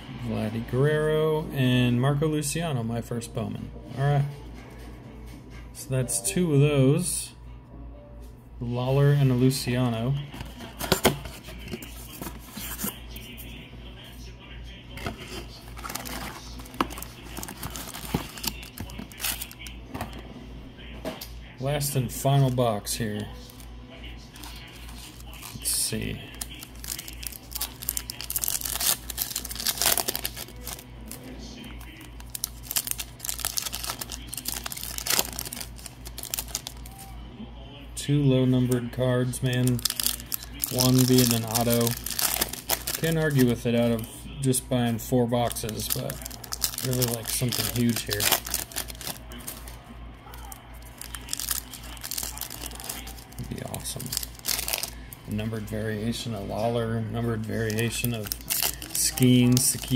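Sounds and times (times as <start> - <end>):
cards being handled: 10.2 - 13.5, 15.0 - 20.2, 24.3 - 30.9, 31.6 - 37.1, 39.4 - 44.1, 45.4 - 49.8
wrapper crinkling and tearing: 15.1 - 19.8, 24.4 - 37.1, 39.3 - 43.9, 45.3 - 55.1, 57.4 - 59.9.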